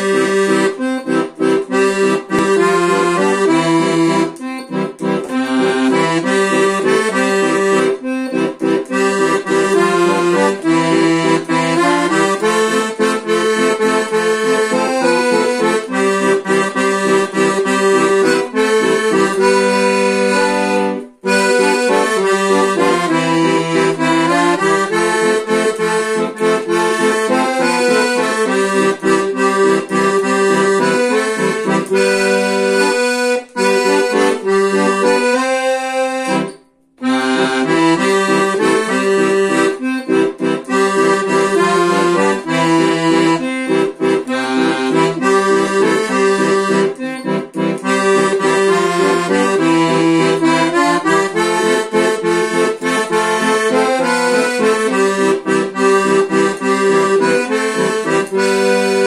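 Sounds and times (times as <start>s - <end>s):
accordion playing a mazurka: 0.0s - 59.0s.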